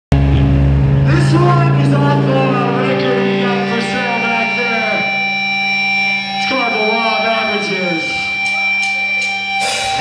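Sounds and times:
rock band chord: 0.1 - 10.0.

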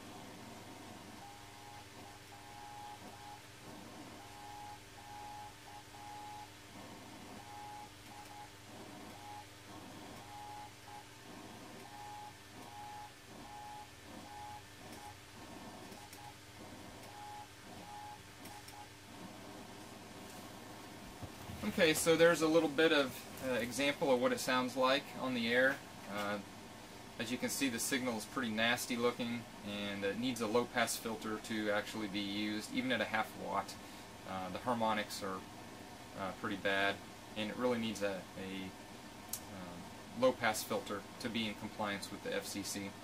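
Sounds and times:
morse code beeps: 4.2 - 6.5.

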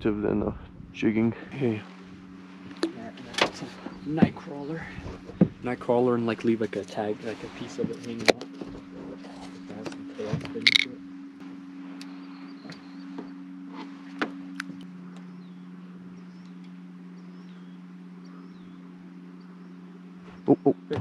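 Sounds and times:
boat motor humming: 0.0 - 21.0.

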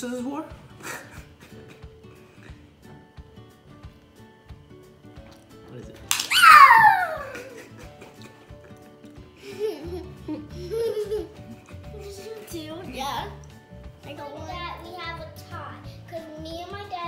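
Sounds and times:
background music with steady beat: 0.0 - 17.0
giggling and laughter: 0.8 - 2.0, 7.0 - 12.5
sharp clap: 6.1 - 6.6
girl squealing: 6.2 - 7.6.

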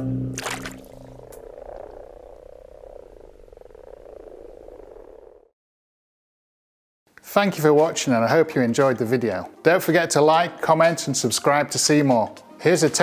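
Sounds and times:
frogs croaking: 0.4 - 5.5
background music: 7.2 - 13.0.

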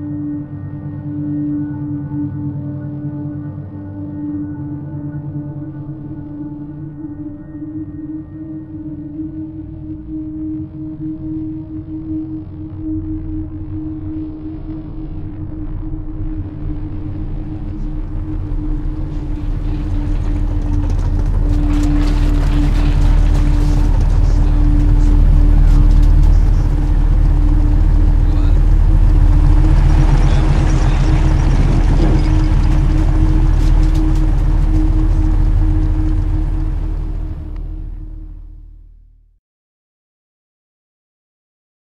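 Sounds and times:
dense low drone: 0.0 - 39.4
rumbling wash of noise: 12.9 - 39.0.

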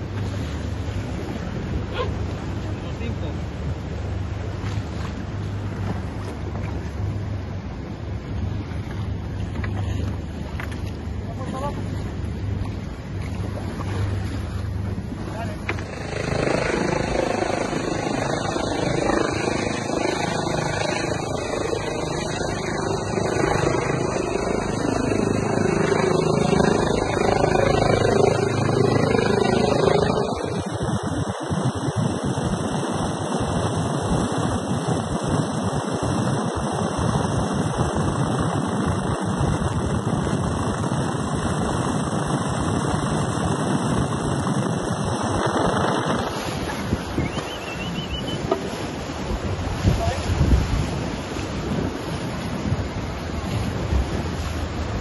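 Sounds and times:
outboard engine running: 0.0 - 55.0
wind noise: 0.0 - 55.0
helicopter in flight: 14.7 - 50.2.

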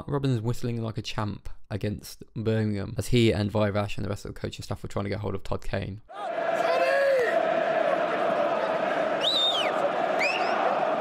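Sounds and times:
stadium crowd noise: 6.1 - 11.0
man whistling loudly: 9.2 - 10.8.

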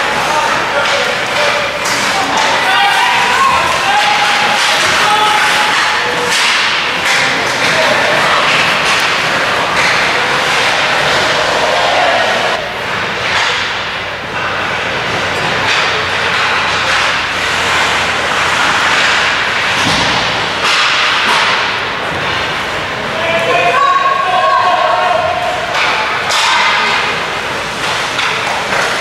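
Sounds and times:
sticks and puck clacking: 0.0 - 29.0.

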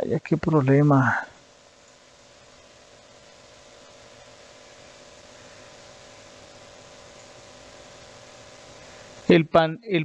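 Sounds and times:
microphone background hiss: 0.0 - 10.0.

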